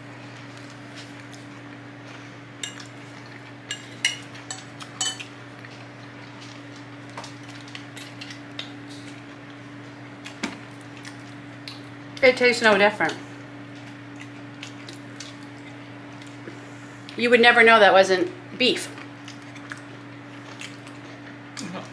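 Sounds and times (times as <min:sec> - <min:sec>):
steady low hum: 0:00.0 - 0:21.9
forks clinking against bowls: 0:02.6 - 0:02.9, 0:03.7 - 0:05.3.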